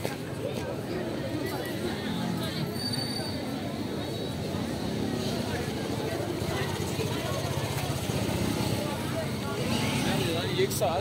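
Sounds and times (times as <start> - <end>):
people talking: 0.0 - 11.0
traffic noise: 0.0 - 11.0.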